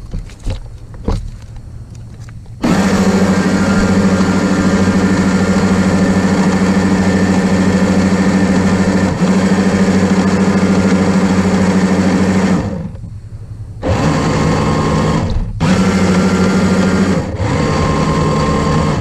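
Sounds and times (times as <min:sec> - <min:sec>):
toy boat motor whine: 0:02.6 - 0:13.0, 0:13.8 - 0:19.0.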